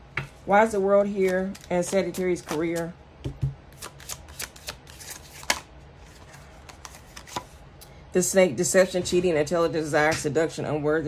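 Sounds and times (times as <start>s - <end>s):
cards being shuffled: 1.0s - 7.6s.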